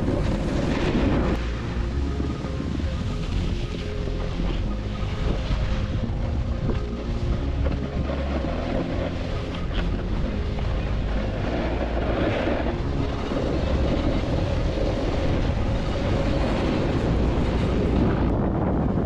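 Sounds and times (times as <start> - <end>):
skis sliding on snow: 0.0 - 6.1, 6.7 - 18.6
wind rushing over microphone: 0.0 - 19.0.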